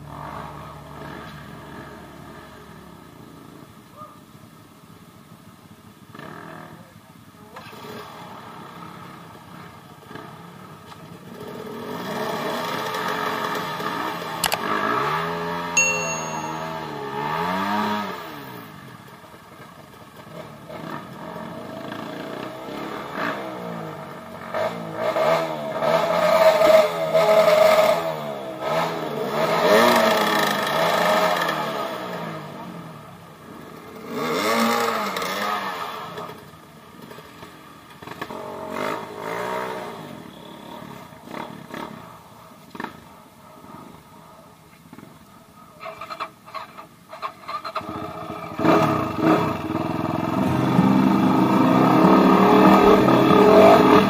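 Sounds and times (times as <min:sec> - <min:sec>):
dirt bike engine revving: 0:48.6 - 0:54.0.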